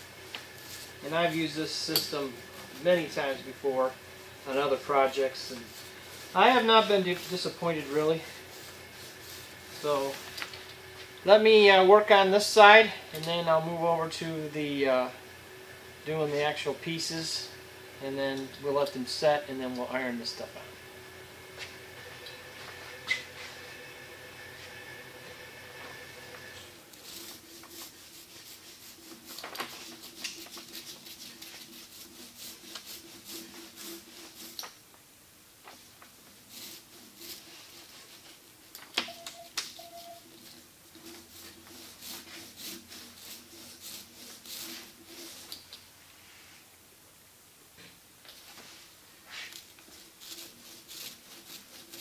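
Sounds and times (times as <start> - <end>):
hand roller rolling on veneer: 0.0 - 14.5, 24.6 - 34.7, 35.8 - 38.5, 39.8 - 45.7, 48.7 - 52.0.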